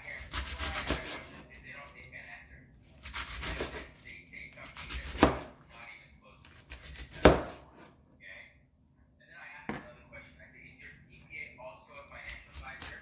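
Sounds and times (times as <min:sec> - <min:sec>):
knife scraping cutting board: 0:00.2 - 0:02.0, 0:02.9 - 0:05.6, 0:06.4 - 0:08.0, 0:12.1 - 0:13.0
knife chopping on wooden board: 0:00.3 - 0:01.4, 0:03.0 - 0:03.8, 0:04.7 - 0:05.5, 0:06.6 - 0:07.9.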